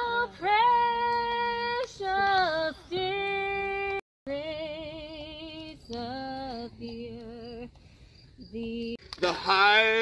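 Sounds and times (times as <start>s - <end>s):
woman singing long held notes: 0.0s - 7.8s, 8.4s - 9.0s.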